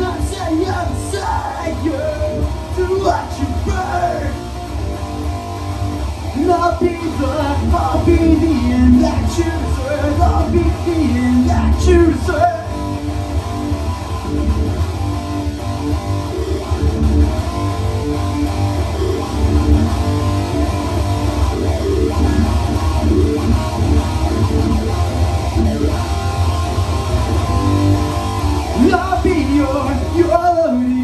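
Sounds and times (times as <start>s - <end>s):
bass guitar: 0.0s - 31.0s
electric guitar playing rock: 0.0s - 31.0s.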